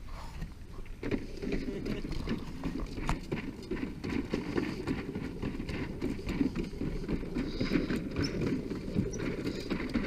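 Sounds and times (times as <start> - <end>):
footsteps on wooden planks: 0.2 - 10.0
cooler rolling over wooden boards: 0.9 - 10.0.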